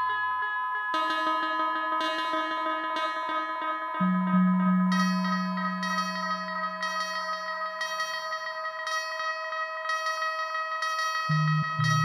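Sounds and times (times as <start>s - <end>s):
synthesizer ambient tones: 4.0s - 7.2s, 11.3s - 12.0s.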